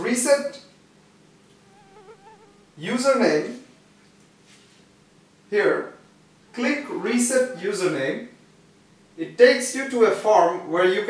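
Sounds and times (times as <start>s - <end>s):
faint wavering buzz: 0.7s - 9.2s
man speaking: 2.8s - 3.6s, 6.6s - 8.2s.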